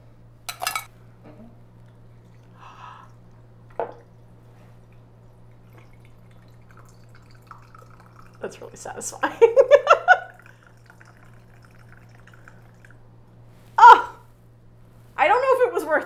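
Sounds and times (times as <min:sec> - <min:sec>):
liquid trickling into a glass: 0:01.7 - 0:13.1.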